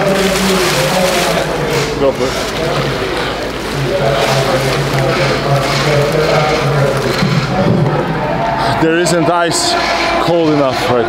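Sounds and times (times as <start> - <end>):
ice cubes rattling and sloshing: 0.0 - 8.4.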